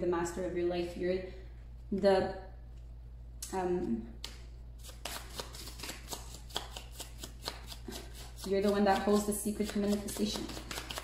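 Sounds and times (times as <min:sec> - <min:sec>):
cards being shuffled: 0:04.2 - 0:11.0.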